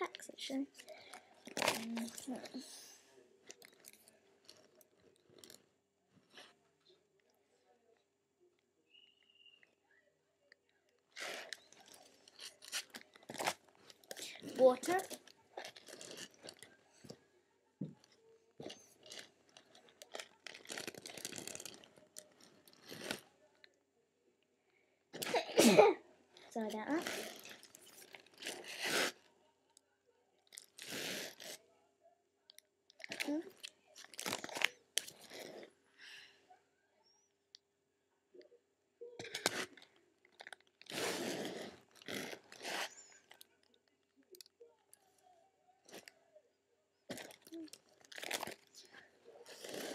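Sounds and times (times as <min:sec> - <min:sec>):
plastic pages rustling: 0:19.0 - 0:23.2.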